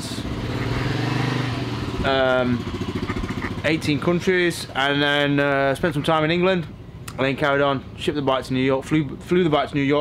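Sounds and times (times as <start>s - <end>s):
motorcycle engine running: 0.0s - 6.9s.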